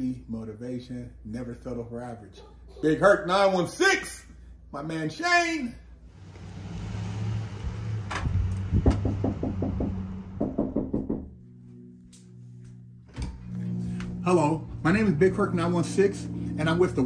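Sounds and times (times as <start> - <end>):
knuckles rapping on door: 8.8 - 11.3.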